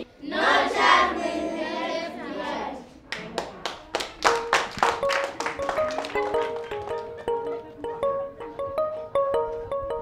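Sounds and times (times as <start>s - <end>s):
children's voices: 0.0s - 3.1s
hand claps: 3.1s - 7.3s
plucked music notes: 4.2s - 10.0s.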